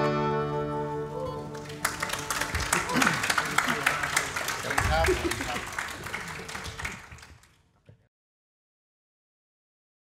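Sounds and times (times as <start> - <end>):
audience applauding: 1.3 - 7.8.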